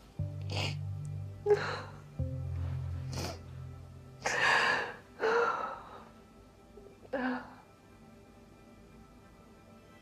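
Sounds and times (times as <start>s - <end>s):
woman sobbing: 1.4s - 2.1s.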